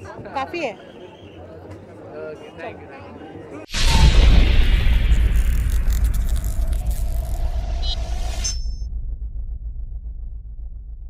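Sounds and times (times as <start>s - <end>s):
deep low rumbling drone: 3.7s - 11.0s.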